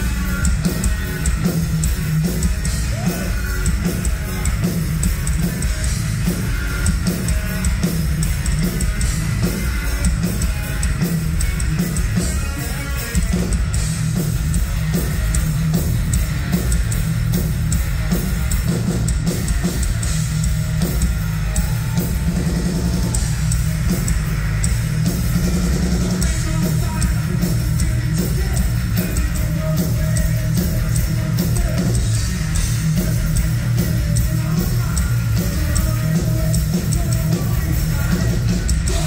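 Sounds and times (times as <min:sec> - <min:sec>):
bass guitar: 0:00.0 - 0:39.0
drum kit: 0:00.0 - 0:39.0
electric guitars: 0:00.0 - 0:39.0.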